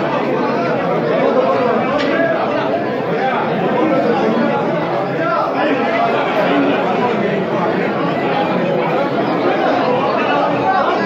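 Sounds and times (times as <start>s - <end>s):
men talking at once: 0.0s - 11.0s.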